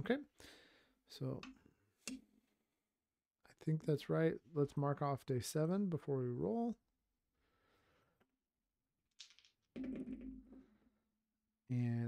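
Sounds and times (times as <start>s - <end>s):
dice rattling in hand: 9.1s - 10.4s
dice clattering on mat: 9.1s - 10.5s.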